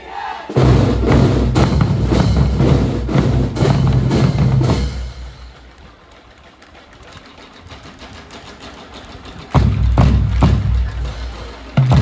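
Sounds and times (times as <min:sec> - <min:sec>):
bass drums and snares beating: 0:00.6 - 0:05.7, 0:07.7 - 0:12.0.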